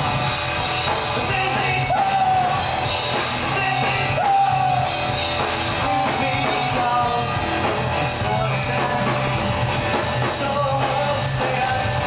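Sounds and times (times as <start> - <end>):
rock band playing: 0.0 - 12.0
man singing yelling: 1.2 - 2.7, 3.4 - 5.0, 5.8 - 7.4, 10.2 - 12.0.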